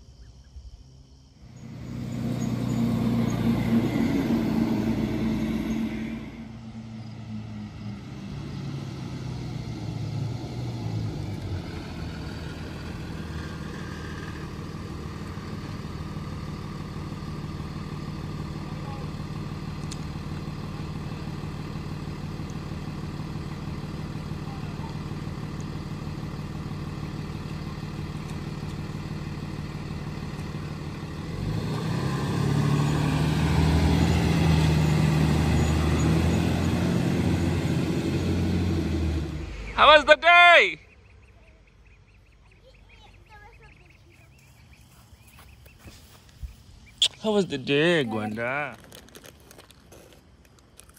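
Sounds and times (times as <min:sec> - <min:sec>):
bus engine running: 0:01.3 - 0:50.9.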